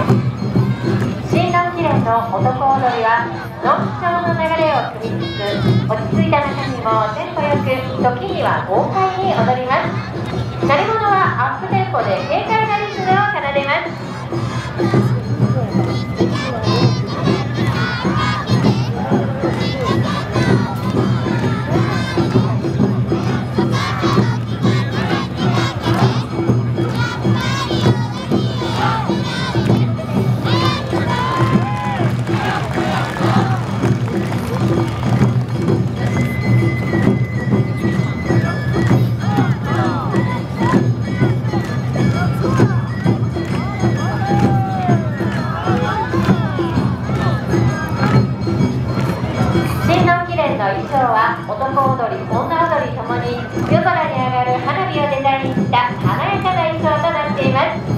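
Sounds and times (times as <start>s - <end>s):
crowd shouting rhythmic calls: 0.0s - 57.9s
festival music: 0.0s - 57.9s.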